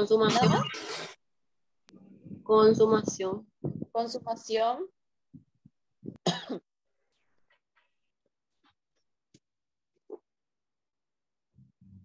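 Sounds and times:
person coughing: 0:06.2 - 0:06.6.

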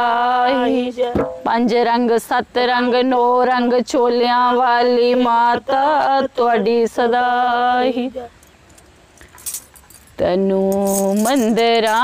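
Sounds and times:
metal jingle discs clinking: 0:08.7 - 0:12.0
person singing: 0:10.2 - 0:12.0.

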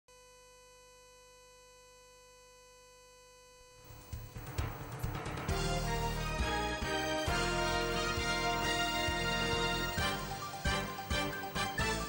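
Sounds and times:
music: 0:03.9 - 0:12.0.

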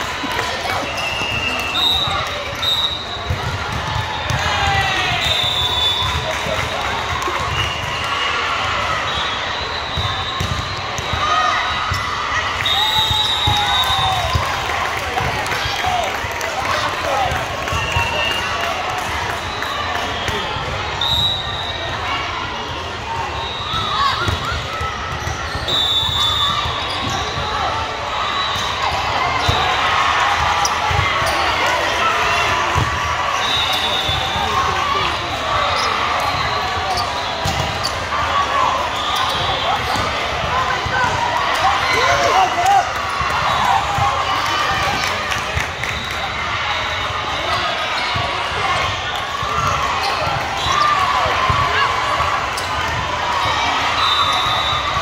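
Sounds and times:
chatter and calls of people: 0:00.0 - 0:55.0.

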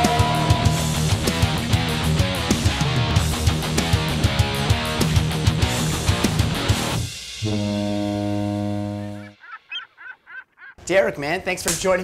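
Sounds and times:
ship's horn blast: 0:07.4 - 0:09.4.

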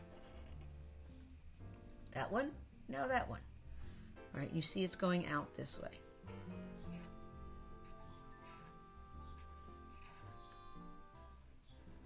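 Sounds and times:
marker drawing on paper: 0:00.0 - 0:00.8, 0:06.3 - 0:12.0
quiet background music: 0:00.0 - 0:12.0.

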